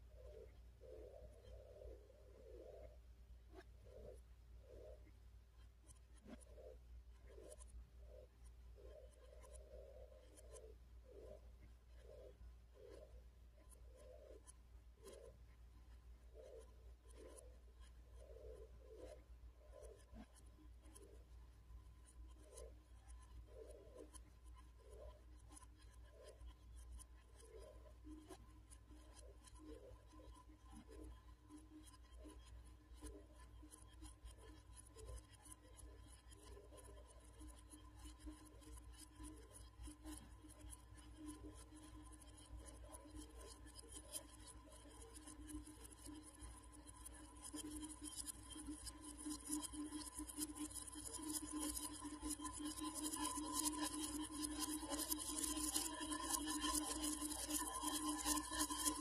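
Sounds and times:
soft irregular scratching: 0:00.0 - 0:59.0.

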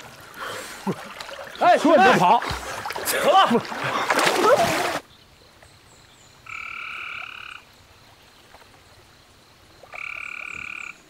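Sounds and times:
frog calling: 0:06.4 - 0:07.7, 0:09.8 - 0:11.0.

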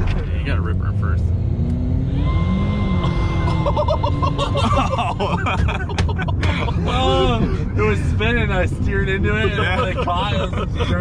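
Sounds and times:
car engine and road rumble: 0:00.0 - 0:11.0
voices: 0:03.0 - 0:11.0
laughter: 0:03.4 - 0:07.6, 0:09.4 - 0:11.0.

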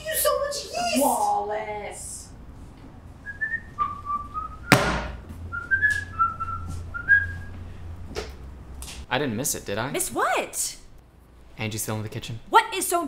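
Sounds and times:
person whistling a tune: 0:03.2 - 0:04.8, 0:05.5 - 0:07.6
loud sharp thump: 0:04.6 - 0:05.2.

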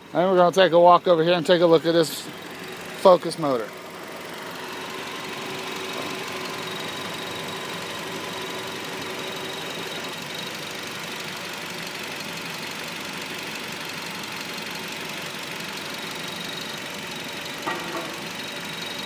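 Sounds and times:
car engine idling: 0:00.0 - 0:19.0.

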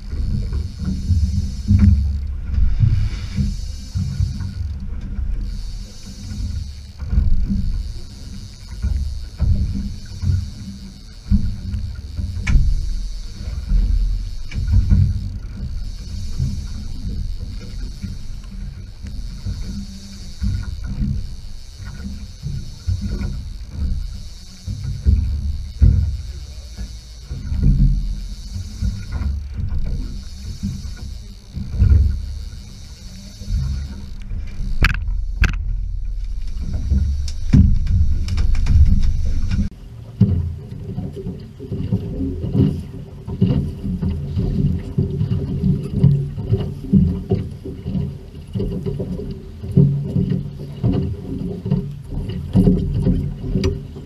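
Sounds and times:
water noise around boat: 0:00.0 - 0:54.0
wind: 0:00.0 - 0:54.0.

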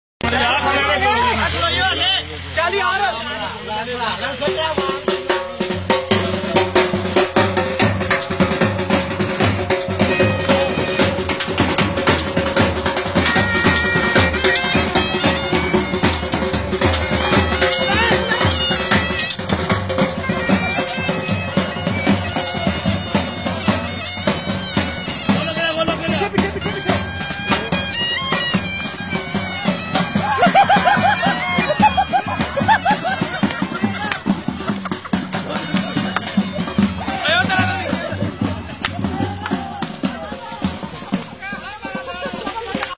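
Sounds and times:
continuous drumming: 0:00.2 - 0:42.9.

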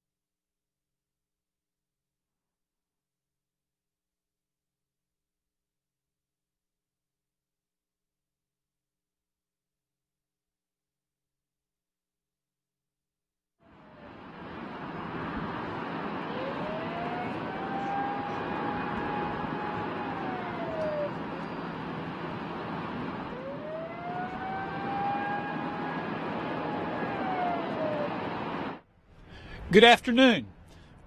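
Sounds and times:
warning siren wailing: 0:13.7 - 0:28.8
steady rushing noise: 0:24.3 - 0:28.8.

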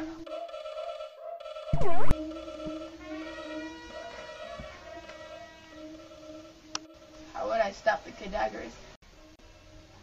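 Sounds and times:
electronic drone chord: 0:00.0 - 0:07.5.

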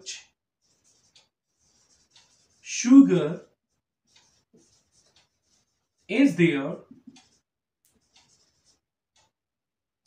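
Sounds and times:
marker scratching on whiteboard: 0:00.0 - 0:09.4.

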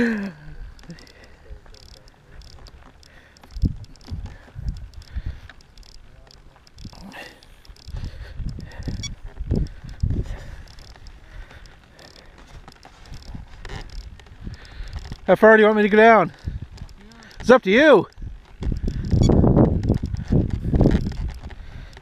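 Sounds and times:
microphone handling noise: 0:03.5 - 0:05.5, 0:06.6 - 0:15.3, 0:18.2 - 0:22.0
wind on microphone: 0:03.5 - 0:05.5, 0:07.8 - 0:11.6, 0:13.1 - 0:15.3, 0:16.3 - 0:17.4, 0:18.1 - 0:22.0.

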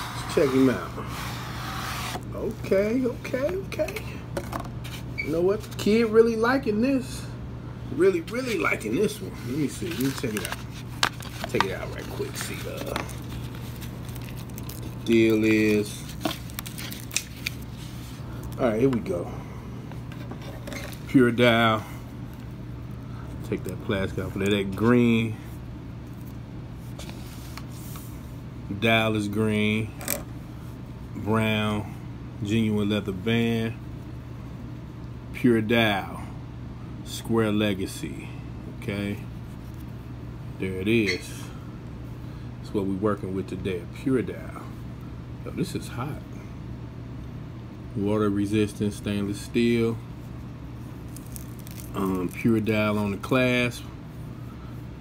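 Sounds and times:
low steady hum: 0:00.0 - 0:55.0
plastic film being peeled: 0:09.8 - 0:18.1, 0:51.0 - 0:52.5.

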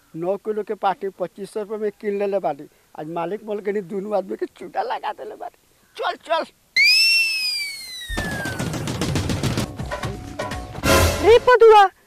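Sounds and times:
falling whistle sound effect: 0:06.8 - 0:08.9
music: 0:08.6 - 0:11.5.

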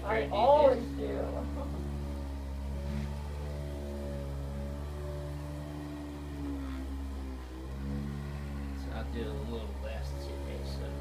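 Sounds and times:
electric massager motor humming: 0:00.0 - 0:11.0.

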